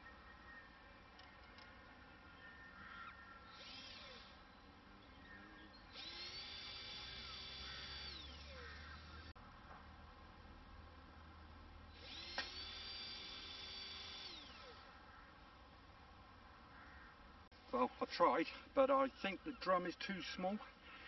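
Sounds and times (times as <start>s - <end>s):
electric drill motor whine: 3.4s - 4.5s, 5.2s - 9.3s, 11.9s - 14.9s.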